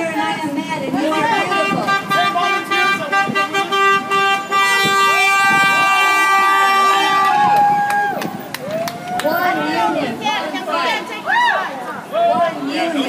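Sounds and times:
people chattering: 0.0 - 7.6, 8.2 - 13.0
car horn long blast: 1.1 - 7.4.

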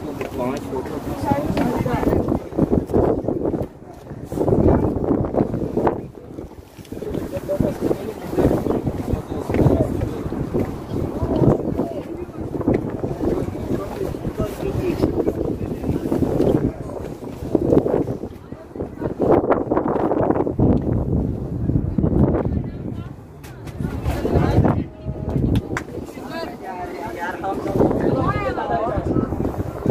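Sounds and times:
indistinct voices: 0.0 - 29.9
wind buffeting microphone: 0.0 - 29.9.

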